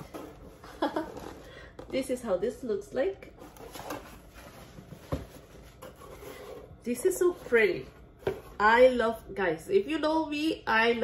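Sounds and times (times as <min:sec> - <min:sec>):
cardboard rustling: 0:03.3 - 0:08.8.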